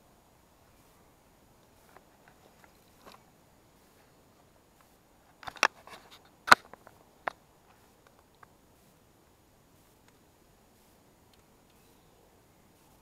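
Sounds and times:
fishing gear clicks and crackles: 5.3s - 7.4s.

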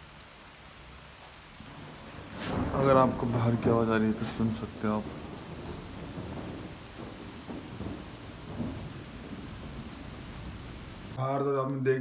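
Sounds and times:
heavy rain falling: 0.0s - 11.2s.

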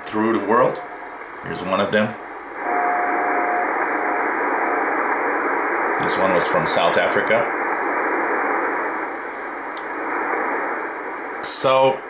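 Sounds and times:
radio band hiss: 0.0s - 12.0s
morse code tone dashes: 2.6s - 5.1s.

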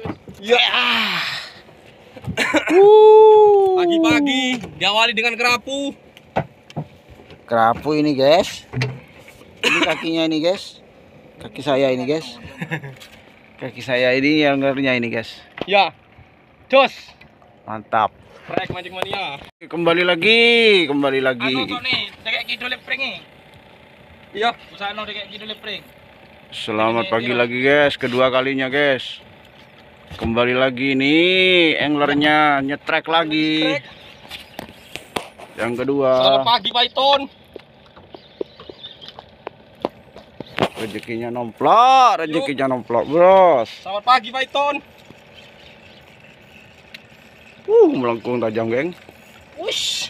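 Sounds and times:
faint engine hum: 0.0s - 50.0s.

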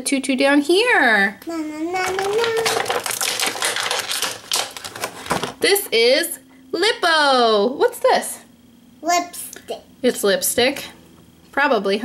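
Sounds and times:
plastic packaging clicks and crinkles: 2.0s - 5.6s.

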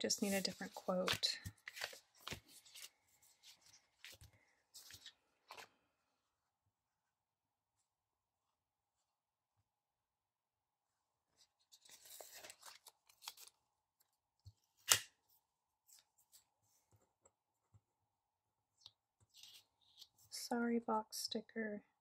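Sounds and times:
paper crinkling: 0.1s - 5.8s, 11.6s - 13.6s.

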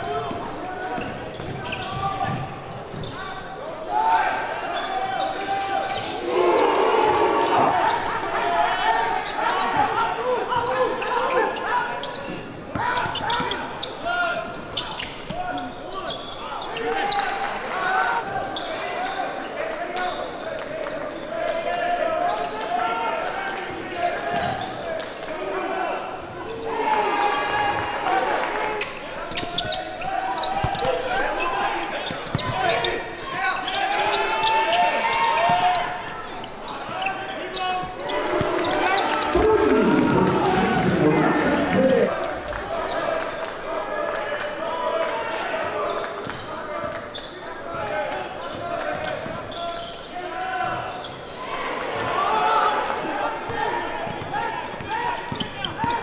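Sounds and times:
crowd and player voices calling: 0.0s - 56.0s.

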